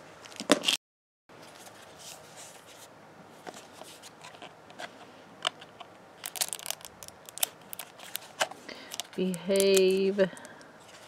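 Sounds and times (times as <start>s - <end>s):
plastic wrapping crinkling: 6.2s - 11.0s.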